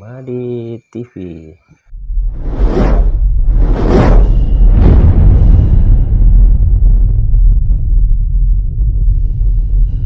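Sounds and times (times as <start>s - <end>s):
deep rumble: 1.9s - 10.0s
swelling whooshes: 2.2s - 6.5s.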